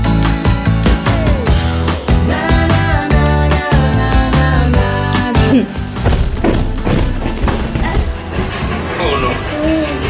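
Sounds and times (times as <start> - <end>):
background music: 0.0 - 10.0
rapid thumps: 5.9 - 9.0.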